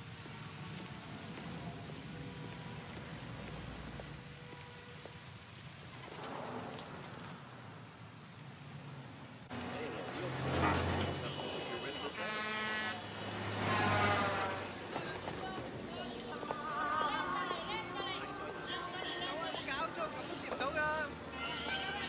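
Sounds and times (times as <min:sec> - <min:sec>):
traffic: 0:00.0 - 0:22.0
passers-by talking: 0:13.6 - 0:22.0.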